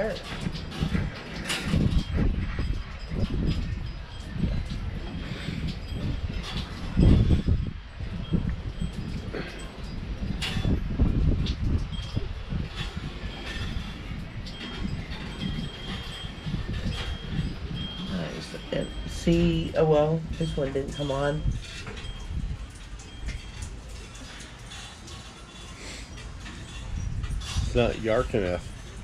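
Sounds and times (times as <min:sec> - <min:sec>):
wind chime tinkling: 0:00.0 - 0:29.0
wind rumbling on microphone: 0:00.0 - 0:29.0.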